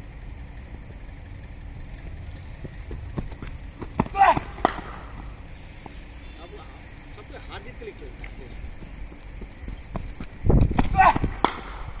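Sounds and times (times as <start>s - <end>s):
running footsteps thudding: 2.0s - 5.0s, 8.6s - 11.6s.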